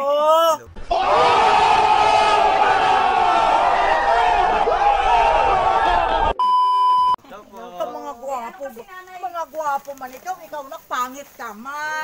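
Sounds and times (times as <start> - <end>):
crowd shouting: 0.8 - 6.4
electronic beep: 6.4 - 7.2.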